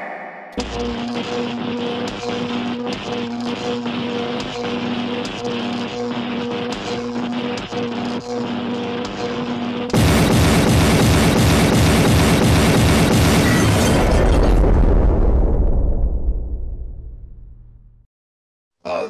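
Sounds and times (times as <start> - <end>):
cartoon explosion sound effect: 9.9 - 17.6.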